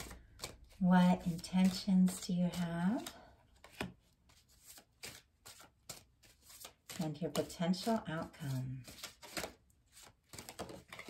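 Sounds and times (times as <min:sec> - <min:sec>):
cards flicking and tapping: 0:00.0 - 0:08.0, 0:08.8 - 0:11.0.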